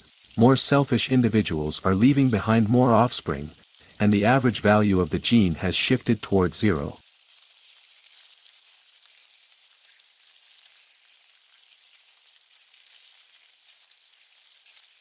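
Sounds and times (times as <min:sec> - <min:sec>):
faint high hiss with crackle: 0:00.0 - 0:15.0.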